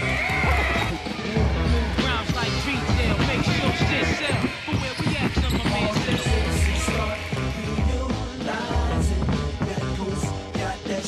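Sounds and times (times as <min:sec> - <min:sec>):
music with heavy bass beat: 0:00.0 - 0:11.0
person singing: 0:00.0 - 0:11.0
basketball bouncing on hardwood floor: 0:02.9 - 0:06.8.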